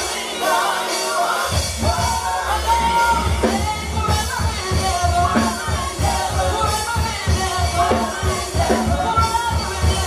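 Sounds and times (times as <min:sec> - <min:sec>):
gospel group singing: 0:00.0 - 0:10.0
instrumental backing with bass beat: 0:00.0 - 0:10.0.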